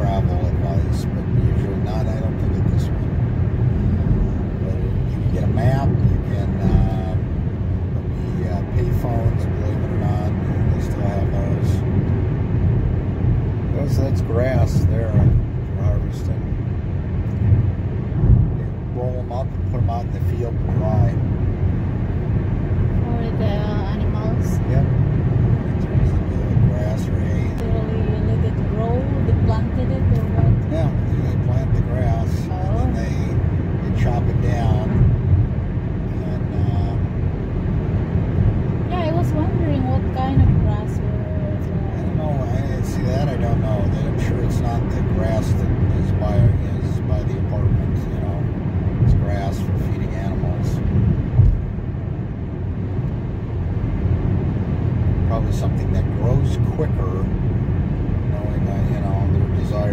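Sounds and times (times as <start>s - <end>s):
car road and engine rumble: 0.0s - 59.9s.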